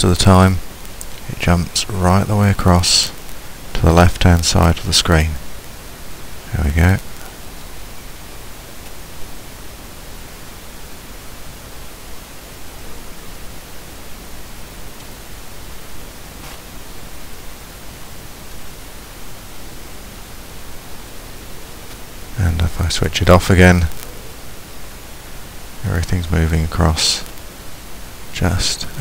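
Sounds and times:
recording hiss: 0:00.0 - 0:29.0.

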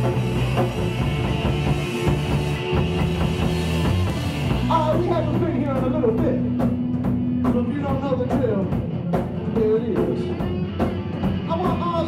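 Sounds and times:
drum kit beat: 0:00.0 - 0:12.0
electric guitar: 0:00.0 - 0:12.0.

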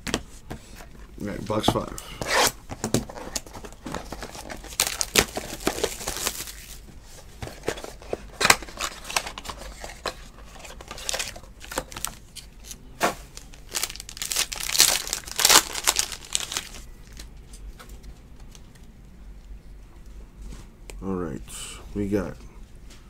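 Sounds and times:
foil pack crackling and tearing: 0:04.1 - 0:06.8, 0:13.3 - 0:16.8.

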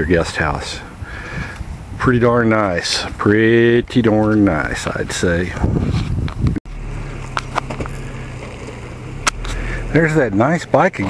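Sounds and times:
vehicle engine running: 0:06.6 - 0:11.0.

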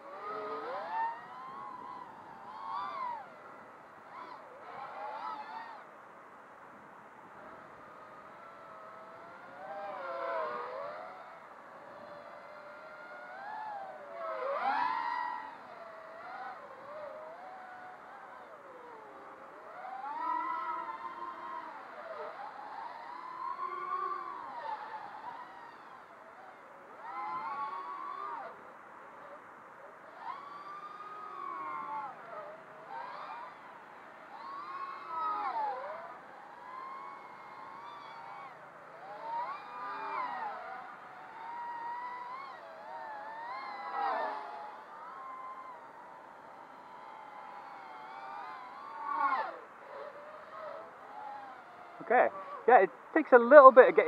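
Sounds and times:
quadcopter motors whining: 0:00.0 - 0:54.0.

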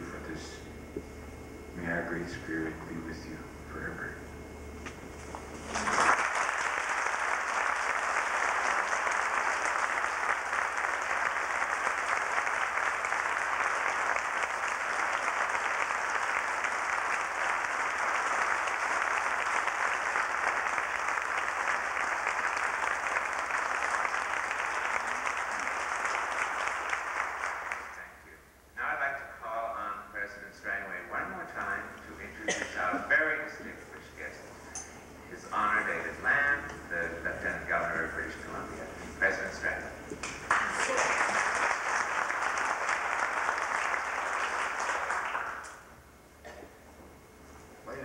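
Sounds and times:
audience applause: 0:05.5 - 0:28.1, 0:40.2 - 0:45.9.

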